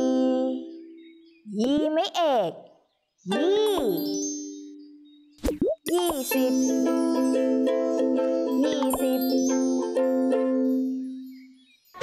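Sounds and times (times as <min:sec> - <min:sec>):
held musical tone: 0:06.1 - 0:11.5.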